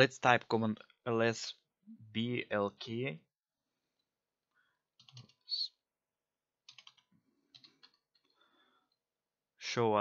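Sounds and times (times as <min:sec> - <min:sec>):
keyboard keys clicking: 0:05.0 - 0:05.4, 0:06.7 - 0:08.2.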